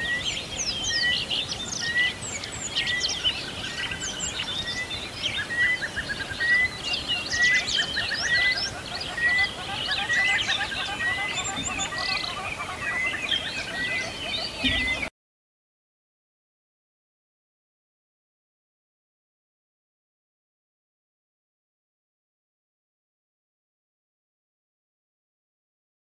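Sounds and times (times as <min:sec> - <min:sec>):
birds chirping: 0:00.0 - 0:15.1.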